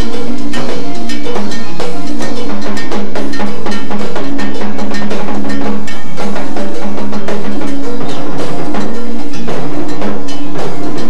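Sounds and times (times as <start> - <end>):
cowbell struck in rhythm: 0.0 - 11.0.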